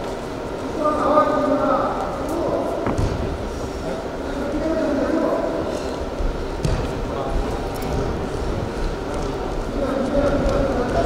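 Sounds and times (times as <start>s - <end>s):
low rumble of sports hall: 0.0s - 11.0s.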